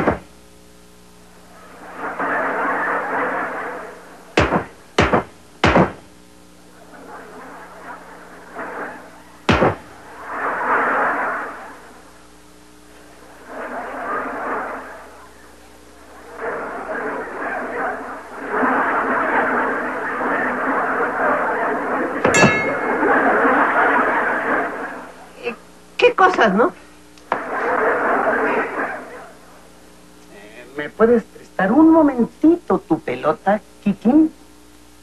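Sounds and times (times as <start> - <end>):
studio audience laughter: 1.6 - 4.4, 6.7 - 12.2, 12.9 - 25.6, 27.3 - 29.7
inflatable ball smacking: 4.4 - 6.0, 9.5 - 9.9
brief ringing clang: 22.3 - 22.9.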